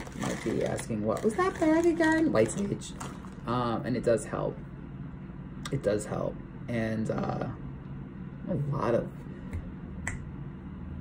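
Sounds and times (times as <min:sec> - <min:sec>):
low steady hum: 0:00.0 - 0:11.0
finger snap: 0:09.5 - 0:10.3.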